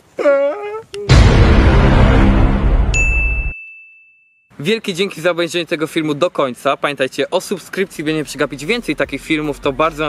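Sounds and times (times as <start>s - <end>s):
loud noisy blast: 1.1s - 3.0s
high ringing ding: 2.9s - 4.4s.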